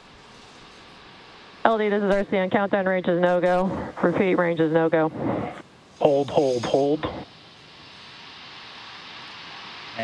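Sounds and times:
rocket venting vapour hiss: 0:00.0 - 0:10.0.

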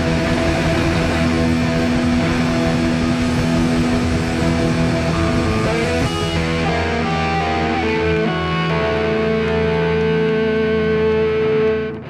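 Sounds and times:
loud electric guitars: 0:00.0 - 0:12.0
punk rock band playing live: 0:00.0 - 0:12.0.

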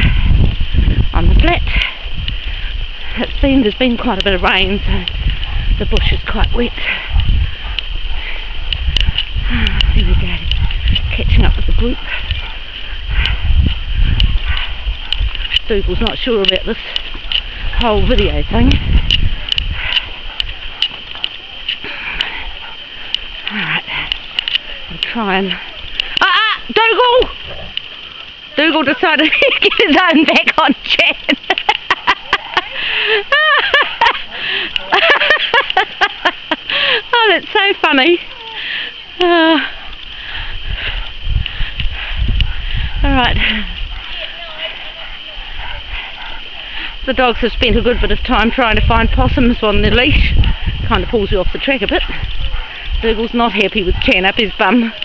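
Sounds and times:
wind rumble on microphone: 0:00.0 - 0:55.0.

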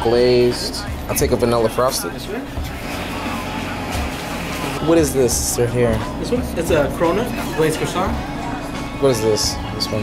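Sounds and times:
low hum of shop background: 0:00.0 - 0:10.0.

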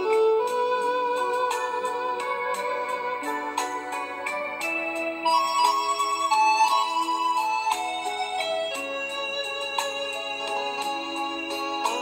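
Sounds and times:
organ-like keyboard notes: 0:00.0 - 0:12.0.

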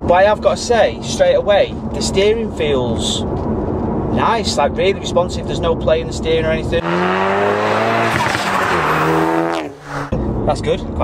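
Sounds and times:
car engine accelerating: 0:06.3 - 0:10.6.

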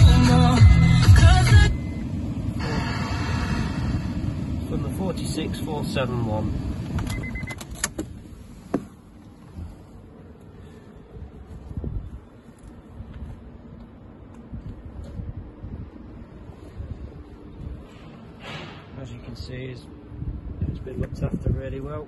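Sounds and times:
short beep: 0:01.6 - 0:02.1, 0:07.1 - 0:07.6.

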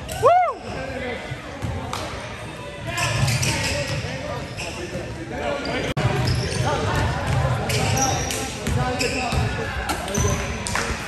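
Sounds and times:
voices of players and spectators: 0:00.0 - 0:11.0.

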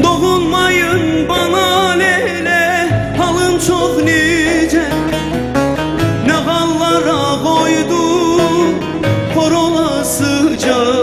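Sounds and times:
ornamented folk melody: 0:00.0 - 0:11.0
plucked strings accompaniment: 0:00.0 - 0:11.0.

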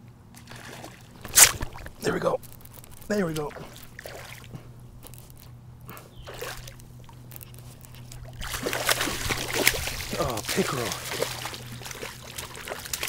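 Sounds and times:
light water noise: 0:00.0 - 0:13.0
fish thrashing and splashing: 0:00.4 - 0:13.0.

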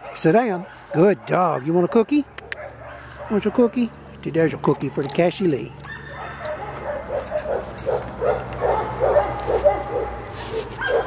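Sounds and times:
dogs barking: 0:00.0 - 0:11.0.

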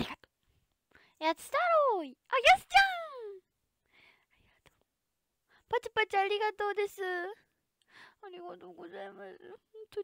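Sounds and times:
faint breathy whispering: 0:03.9 - 0:04.8.

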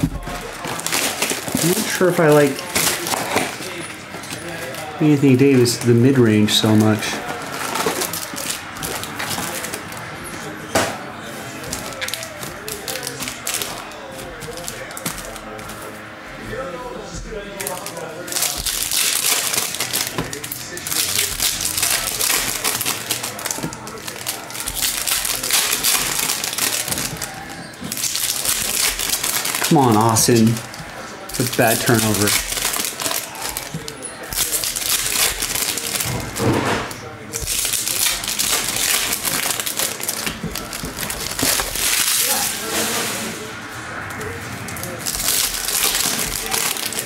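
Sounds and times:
foil wrappers crinkling and tearing: 0:00.0 - 0:10.6, 0:11.3 - 0:43.5, 0:44.1 - 0:47.0.

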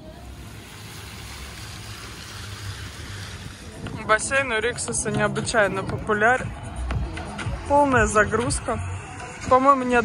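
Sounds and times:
water running down fountain: 0:00.0 - 0:05.0.

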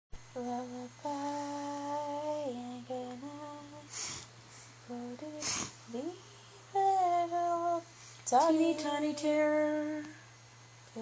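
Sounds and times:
person humming a lullaby: 0:00.3 - 0:10.3.

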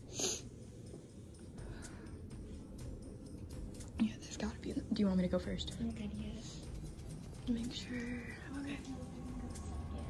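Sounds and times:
low steady rumble: 0:00.0 - 0:10.0
hushed whispering voices: 0:07.4 - 0:10.0.

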